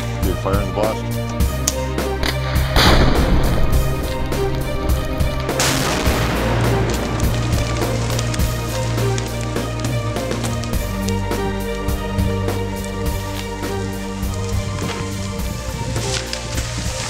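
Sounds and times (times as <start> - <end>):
background music: 0.0 - 17.0
explosive blasts: 2.3 - 10.8.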